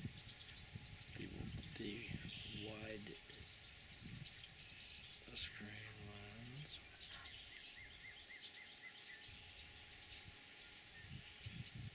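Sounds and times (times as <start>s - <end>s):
steady high hiss: 0.0s - 11.9s.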